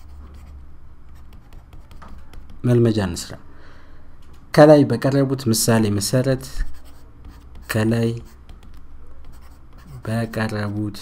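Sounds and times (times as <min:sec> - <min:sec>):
stylus scratching on tablet: 0:00.0 - 0:02.8, 0:06.6 - 0:11.0.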